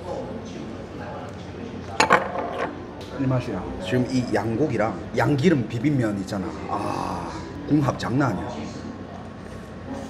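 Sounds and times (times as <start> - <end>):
faint voices: 0.0 - 10.0
tableware clinking: 1.9 - 2.8.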